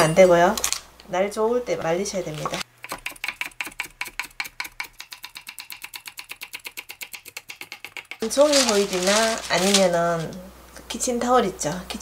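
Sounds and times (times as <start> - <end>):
knife chopping on wooden board: 2.5 - 8.4.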